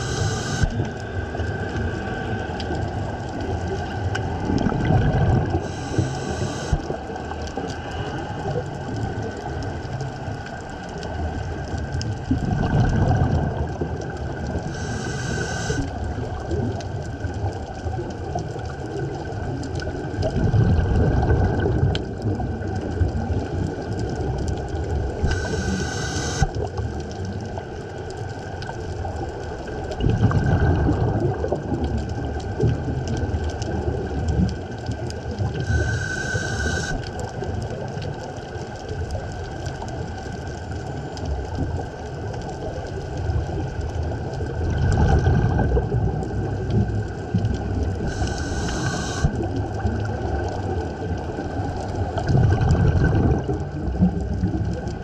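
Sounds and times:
regulator hiss: 0.0s - 0.8s, 5.6s - 6.9s, 14.7s - 15.9s, 25.2s - 26.5s, 35.6s - 37.1s, 48.0s - 49.4s
exhaled bubbles rumbling: 0.0s - 55.0s
low underwater rumble: 0.0s - 55.0s.

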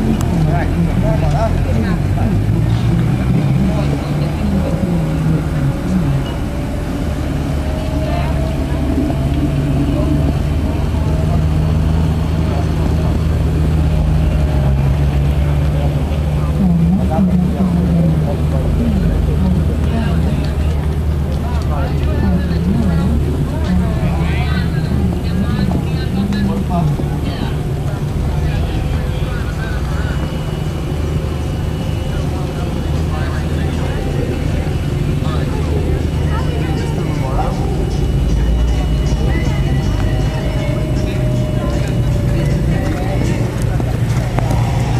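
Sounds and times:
indistinct voices: 0.0s - 44.9s.

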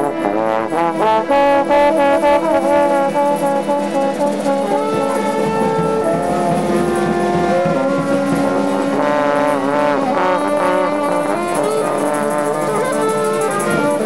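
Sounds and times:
brass band playing: 0.0s - 14.0s
trombone notes bending in pitch: 0.0s - 14.0s.

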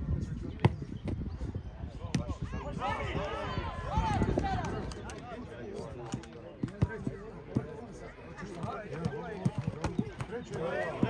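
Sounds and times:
football being kicked: 8.6s - 11.0s.

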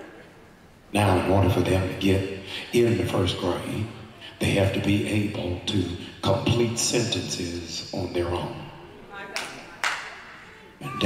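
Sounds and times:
sharp handclaps: 9.4s - 10.4s.

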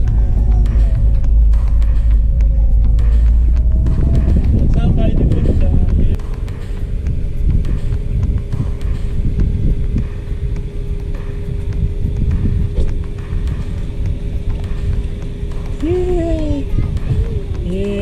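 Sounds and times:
steady low hum: 0.0s - 18.0s
wind buffeting microphone: 0.0s - 18.0s.

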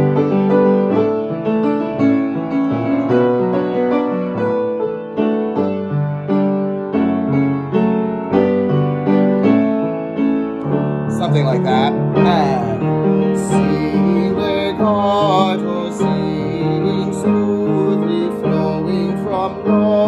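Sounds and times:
piano chords and melody: 0.0s - 20.0s.

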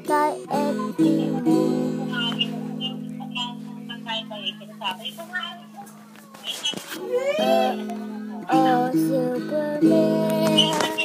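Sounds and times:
guitar chord strummed: 0.0s - 5.0s.

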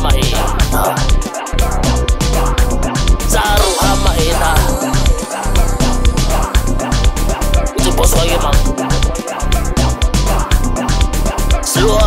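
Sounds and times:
music with deep bass beat: 0.0s - 12.0s.

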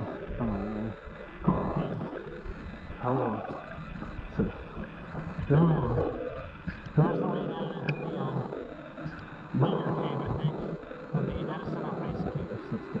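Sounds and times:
person making vocal sounds: 4.4s - 13.0s.

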